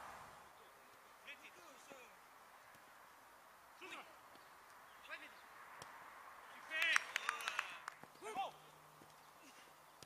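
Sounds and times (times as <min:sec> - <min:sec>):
distant person shouting: 0:06.6 - 0:08.6.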